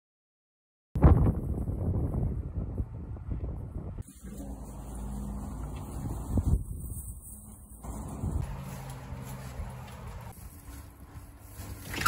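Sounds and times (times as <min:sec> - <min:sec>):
low mechanical hum: 0:04.0 - 0:12.0
footsteps on pavement: 0:04.6 - 0:12.0.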